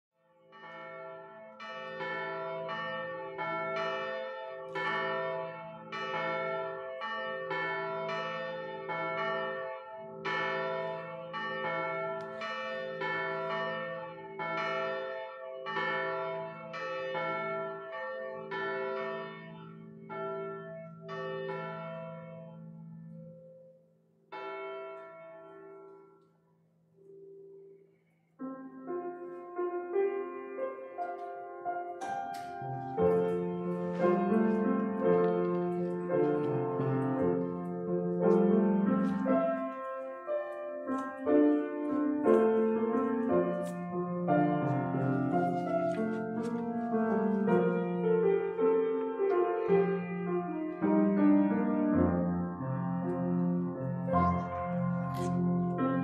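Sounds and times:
church bells ringing: 0.4s - 26.4s, 28.4s - 56.0s.

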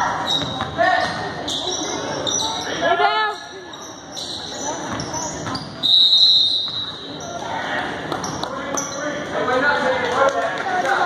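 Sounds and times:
voices echoing in gym: 0.0s - 11.0s.

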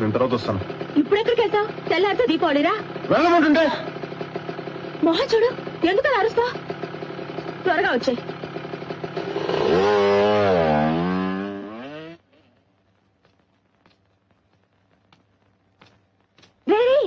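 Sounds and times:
scooter engine idling and revving: 0.0s - 12.5s.

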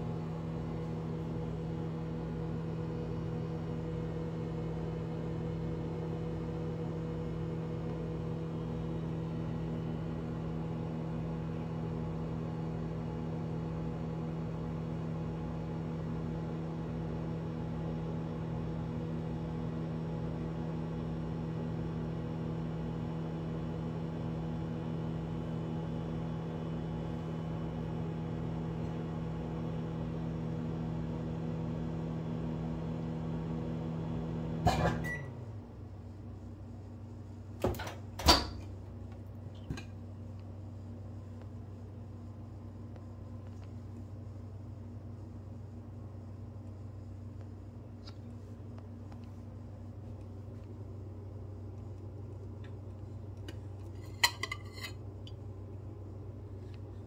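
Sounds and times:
microwave pitched tones: 0.0s - 36.0s
microwave fan rushing: 0.0s - 57.0s
microwave oven humming: 0.0s - 57.0s.

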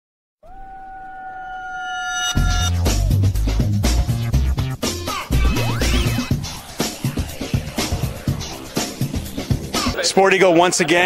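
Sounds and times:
electronic tone rising: 1.5s - 10.1s.

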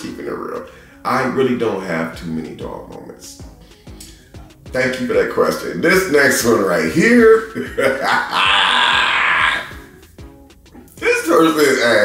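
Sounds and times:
background music with low beat: 0.0s - 12.0s
man laughing loudly: 7.4s - 9.9s.

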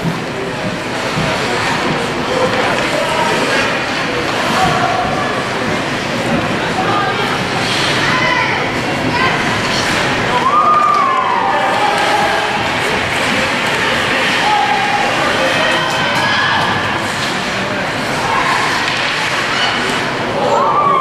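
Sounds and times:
spectators shouting and cheering: 0.0s - 21.0s.

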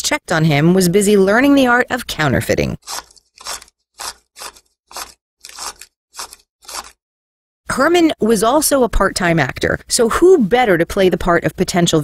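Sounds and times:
scissors snipping: 2.8s - 7.0s.

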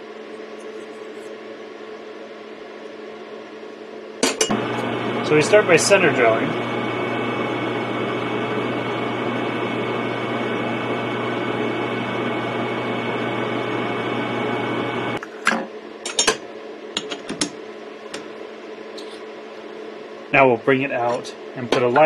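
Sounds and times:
metal lathe running: 4.5s - 15.2s.

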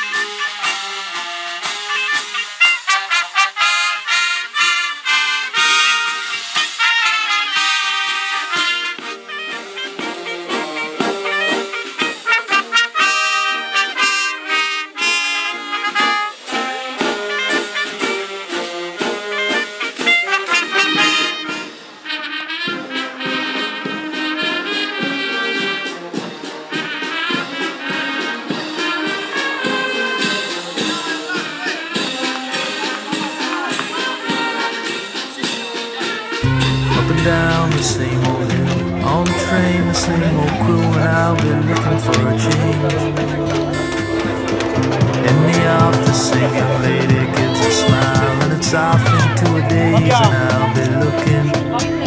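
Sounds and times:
brass band playing: 0.0s - 52.0s.

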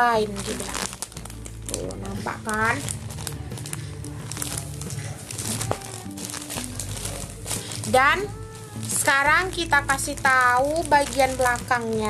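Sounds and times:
plastic pack crinkling: 0.0s - 12.0s
soft background music: 0.0s - 12.0s.

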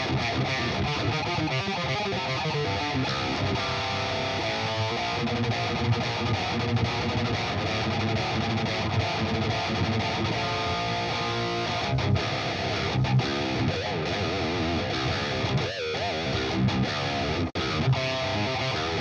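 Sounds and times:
distorted electric guitar riffs: 0.0s - 19.0s.

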